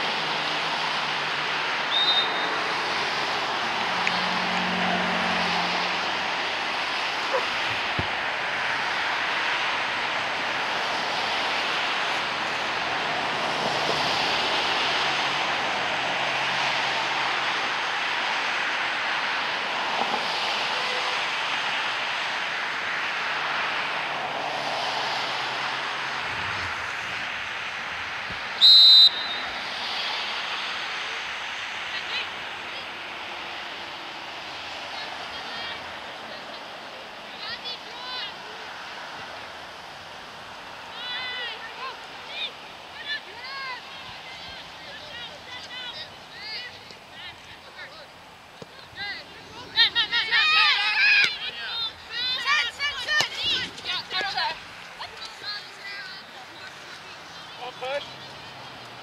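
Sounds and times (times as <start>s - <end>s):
outdoor background noise: 0.0s - 59.0s
referee's whistle blast: 1.9s - 2.6s, 28.6s - 29.5s.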